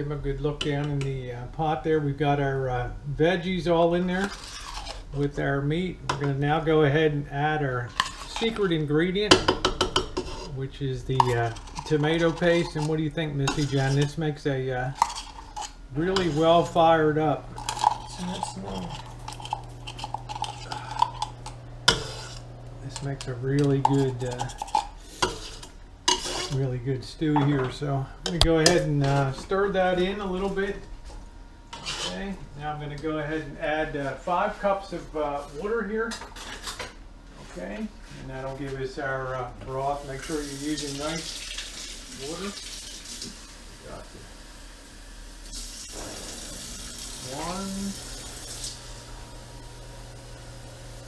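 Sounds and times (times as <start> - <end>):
faucet running water: 14.8 - 25.3, 39.8 - 51.0.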